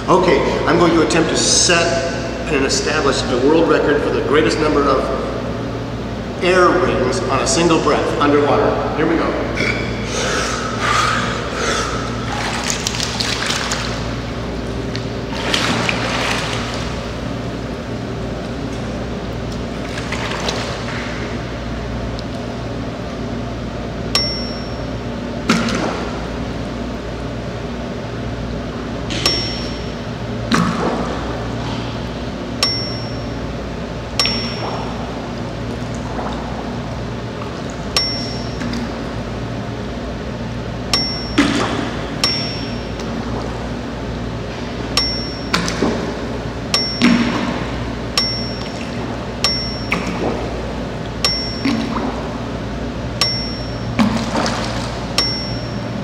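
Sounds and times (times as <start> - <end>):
steady low hum: 0.0 - 56.0
water splashing: 12.1 - 17.3, 19.6 - 21.6, 34.2 - 39.2, 46.9 - 52.5, 53.6 - 55.7
bell-like ding: 24.2 - 24.9, 29.2 - 30.0, 32.6 - 33.3, 34.2 - 34.7, 38.0 - 38.6, 41.0 - 41.4, 42.2 - 42.8, 45.0 - 45.5, 46.8 - 47.3, 48.2 - 48.6, 49.4 - 50.0, 51.2 - 51.7, 53.2 - 53.9, 55.2 - 55.8.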